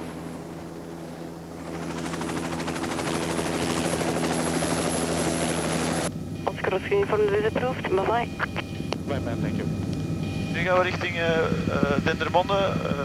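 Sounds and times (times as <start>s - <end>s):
helicopter engine drone: 0.0s - 13.0s.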